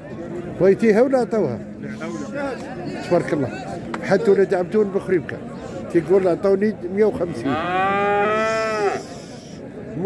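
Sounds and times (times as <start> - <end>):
calf mooing: 7.4 - 9.0.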